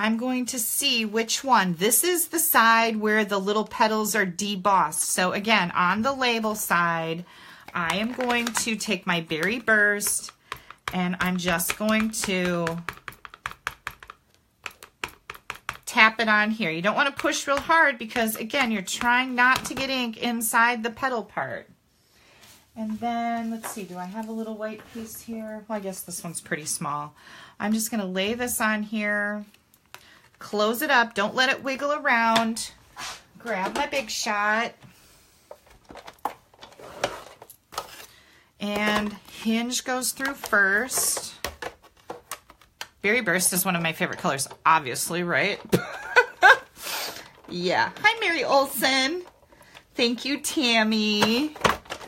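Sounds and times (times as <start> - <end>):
ink pad tapping on plastic: 9.4 - 15.9.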